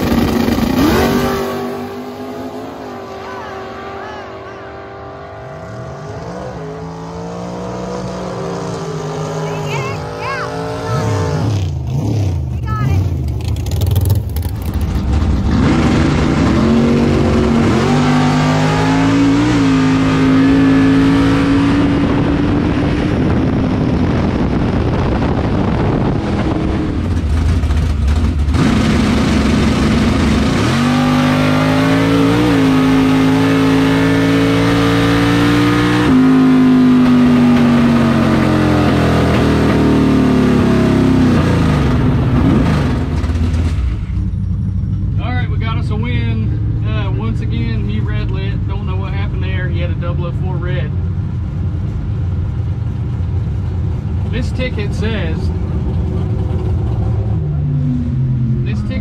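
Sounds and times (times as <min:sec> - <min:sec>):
drag car engine at full throttle: 0:00.0 - 0:59.0.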